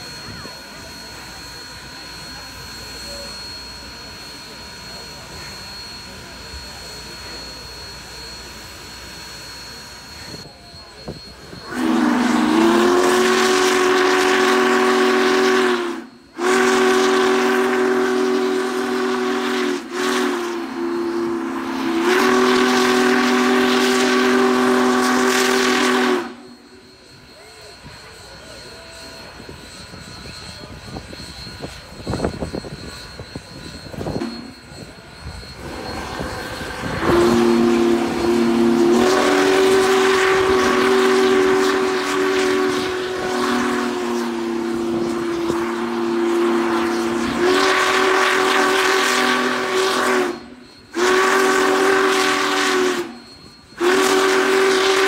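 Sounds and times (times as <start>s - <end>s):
steam locomotive chime whistle: 0.0s - 55.0s.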